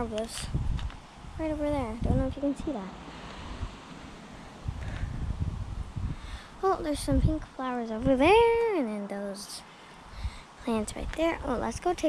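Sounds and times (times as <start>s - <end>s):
wind buffeting microphone: 0.0s - 8.7s, 10.0s - 12.0s.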